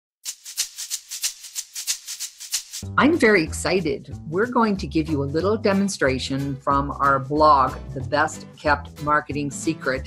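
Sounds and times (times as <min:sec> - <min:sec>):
shaker rhythm: 0:00.2 - 0:02.9.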